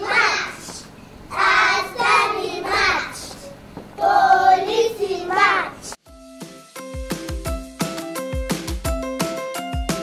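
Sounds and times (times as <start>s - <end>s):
children singing together: 0.0s - 6.0s.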